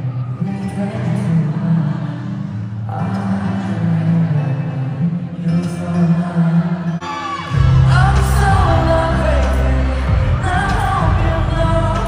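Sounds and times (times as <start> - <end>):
live pop music: 0.0 - 12.0
heavy bass line: 7.6 - 12.0.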